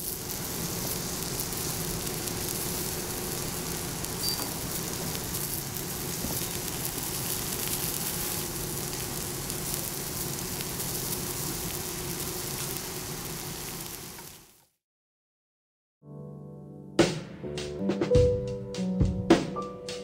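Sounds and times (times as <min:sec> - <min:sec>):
faint steady hum: 0:00.0 - 0:13.2
meat sizzling on a griddle: 0:00.0 - 0:14.7.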